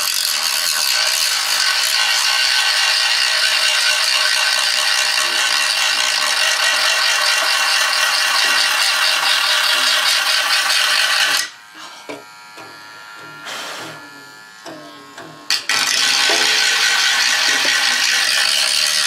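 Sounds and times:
rotary tool grinding: 0.0 - 19.0.

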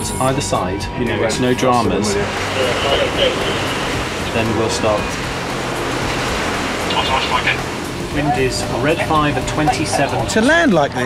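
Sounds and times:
jet engine at hover power: 1.8 - 10.6.

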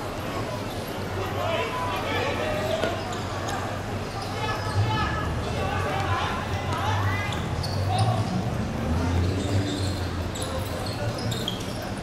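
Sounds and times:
players calling out: 1.2 - 11.8.

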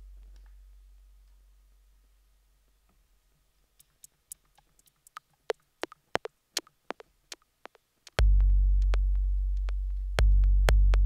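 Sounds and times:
sharp electronic clicks: 3.8 - 8.2.

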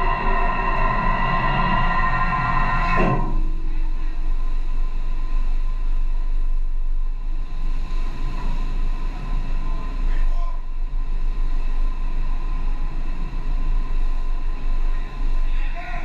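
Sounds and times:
sustained musical chord: 0.0 - 3.5
ship and sea rumble: 0.0 - 16.0.

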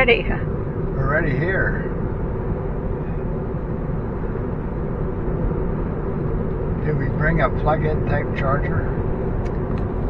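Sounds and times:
road and tyre noise in car: 0.0 - 10.0.

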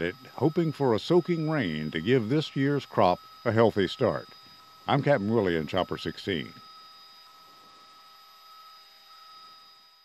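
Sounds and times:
electrical hum: 0.0 - 10.0
high whining tones: 0.0 - 10.0.

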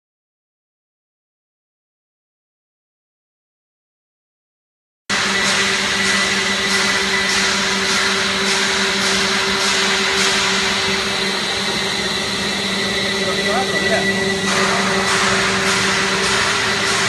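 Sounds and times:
machine motor hum with whine: 5.1 - 17.0.

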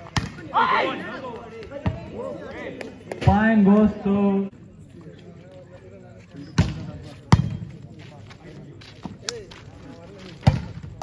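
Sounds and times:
volleyball being struck by hands: 10.4 - 11.0.

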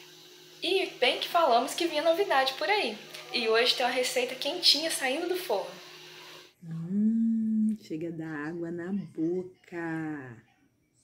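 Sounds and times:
woman humming: 6.6 - 8.0
woman speaking: 6.6 - 10.5.

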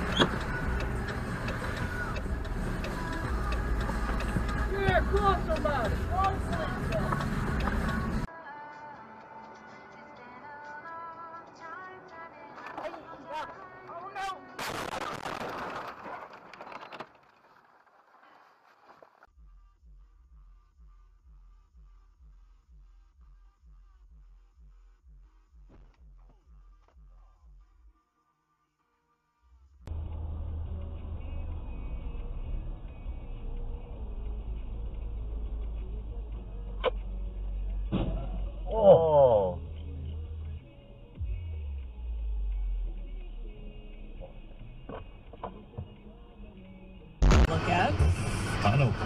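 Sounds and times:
car idling heard from inside: 0.0 - 8.3, 29.8 - 47.2
car crash impact: 14.6 - 17.1
person exclaiming: 38.7 - 39.6.

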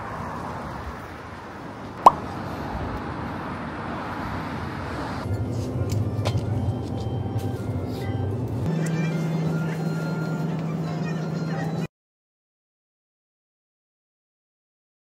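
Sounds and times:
low hum in a store: 5.2 - 11.9
soft background music: 5.3 - 11.9.

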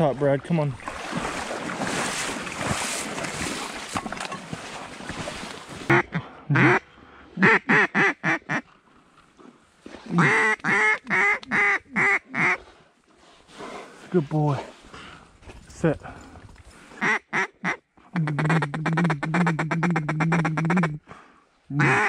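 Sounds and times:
rustling and splashing: 0.0 - 6.0, 8.6 - 11.5
duck call quacks: 5.9 - 6.8, 7.4 - 8.6, 10.2 - 12.6, 17.0 - 21.0, 21.8 - 22.0.

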